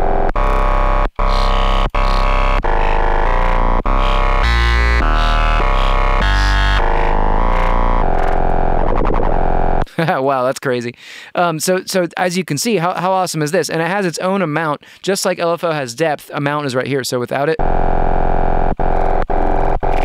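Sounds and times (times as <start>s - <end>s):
buzzy distorted synth notes: 0.0s - 9.9s, 17.6s - 20.0s
deep synth bass: 0.0s - 9.9s, 17.6s - 20.0s.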